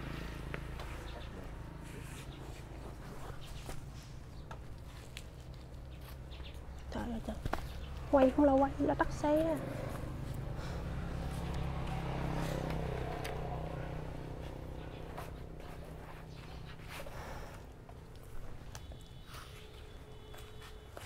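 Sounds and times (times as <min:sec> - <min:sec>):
motorbike engine humming: 0:00.0 - 0:21.0.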